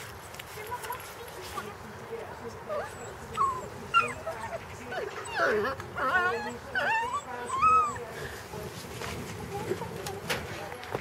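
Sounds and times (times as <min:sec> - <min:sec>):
puppies whining and yipping: 0:02.7 - 0:08.1.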